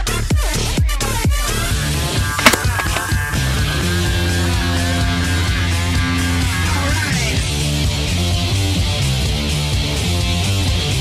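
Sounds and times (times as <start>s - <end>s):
rock music: 2.0s - 11.0s
sharp crack: 2.3s - 3.4s.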